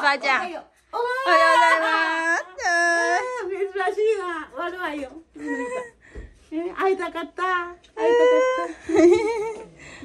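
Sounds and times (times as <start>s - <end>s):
infant crying: 1.3s - 3.5s.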